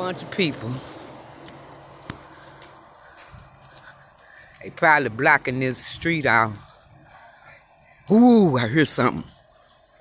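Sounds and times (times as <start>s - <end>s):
faint outdoor background noise: 0.0s - 10.0s.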